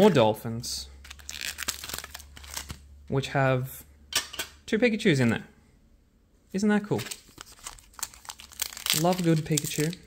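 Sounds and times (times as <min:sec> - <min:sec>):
foil wrappers crinkling: 0:01.0 - 0:02.8, 0:07.0 - 0:10.0.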